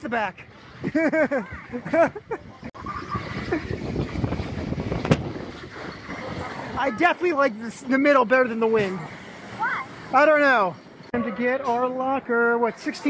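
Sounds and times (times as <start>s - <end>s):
roller coaster train rumbling: 0.0s - 13.0s.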